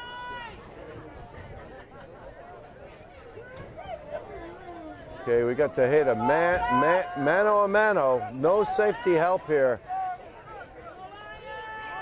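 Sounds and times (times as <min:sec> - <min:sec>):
distant shouting of players: 0:03.3 - 0:12.0.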